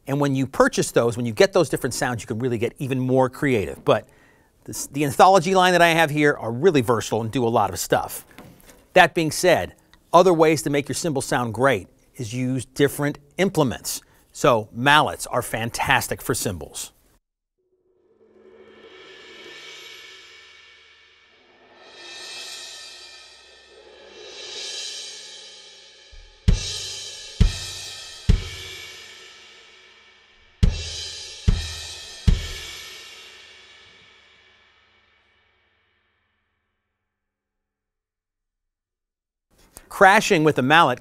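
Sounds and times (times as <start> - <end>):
cymbal mallet crashes: 18.0 - 35.0.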